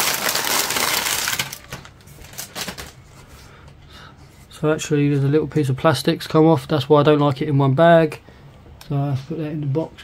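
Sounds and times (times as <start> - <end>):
plastic bag crinkling: 0.0 - 3.0.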